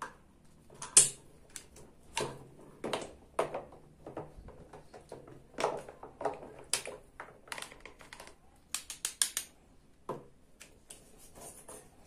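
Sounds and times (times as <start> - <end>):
plastic toys clicking and clattering: 0.8 - 9.6.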